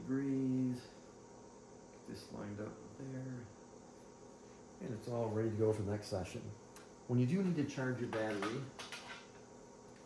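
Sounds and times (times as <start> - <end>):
man speaking: 2.1 - 3.5, 4.8 - 8.7.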